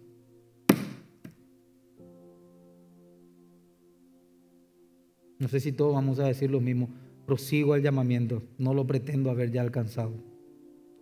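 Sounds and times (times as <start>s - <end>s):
soft sustained background chord: 0.0s - 11.0s
sharp thump: 0.7s - 1.4s.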